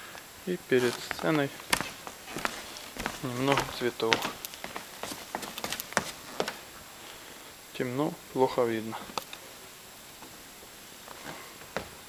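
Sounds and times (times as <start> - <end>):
man speaking: 0.4 - 1.8, 2.4 - 4.4, 7.7 - 9.2.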